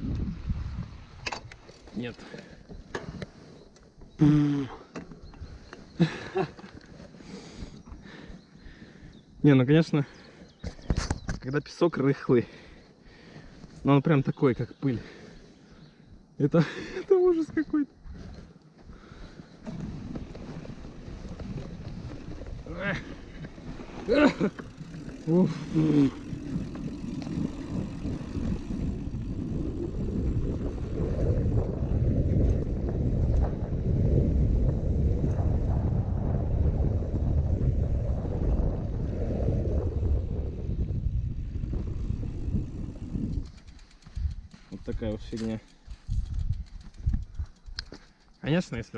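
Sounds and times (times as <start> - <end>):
bike rolling on sandy dirt: 0.0 - 48.9.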